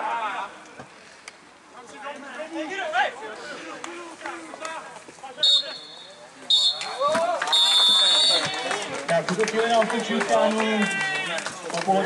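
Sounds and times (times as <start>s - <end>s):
players shouting: 2.4s - 9.0s, 9.8s - 12.0s
referee's whistle blasts: 5.4s - 8.6s.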